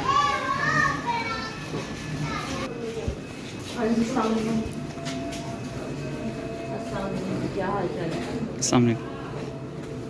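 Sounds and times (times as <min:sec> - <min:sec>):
children chattering: 0:00.0 - 0:04.7.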